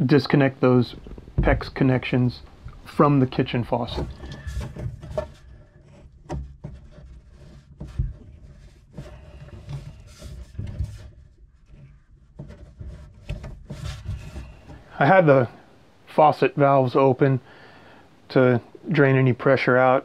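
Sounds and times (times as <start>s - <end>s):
plastic tubing rubbing and scraping: 0.0s - 15.6s.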